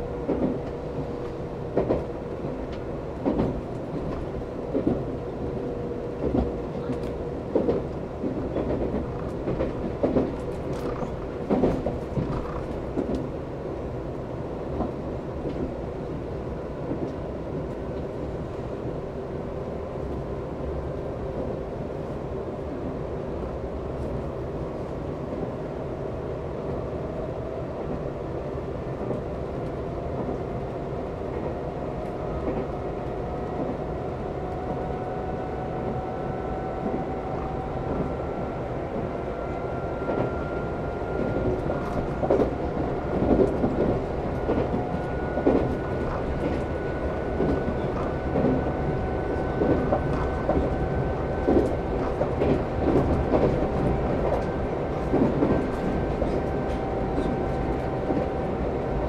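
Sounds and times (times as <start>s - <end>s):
train traction motor whine: 32.1s - 59.0s.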